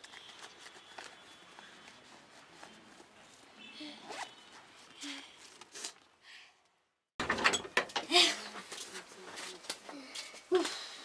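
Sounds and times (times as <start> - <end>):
bag zipper being pulled: 4.0 - 4.4
loud clattering: 7.2 - 8.0.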